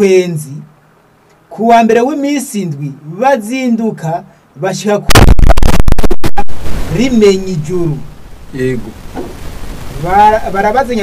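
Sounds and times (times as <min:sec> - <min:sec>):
faint hiss: 0:00.0 - 0:11.0
harsh distorted static: 0:05.1 - 0:11.0.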